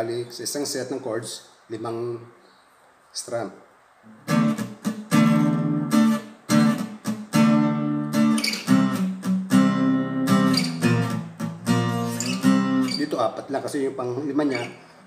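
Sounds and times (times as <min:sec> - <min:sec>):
acoustic guitar strumming: 0:04.2 - 0:13.2.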